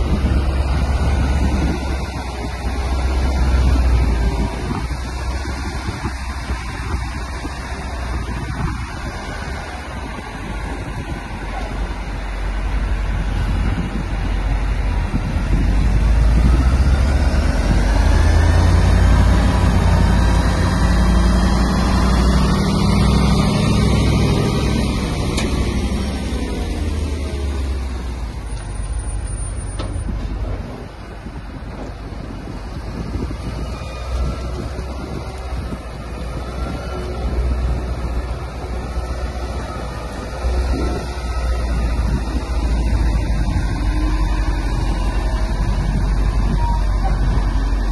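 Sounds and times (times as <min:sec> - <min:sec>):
diesel engine rumbling: 0:00.0 - 0:47.9.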